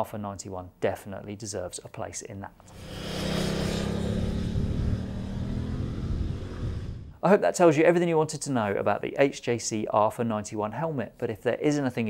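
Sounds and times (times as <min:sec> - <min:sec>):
motorcycle engine running: 0:02.7 - 0:07.1.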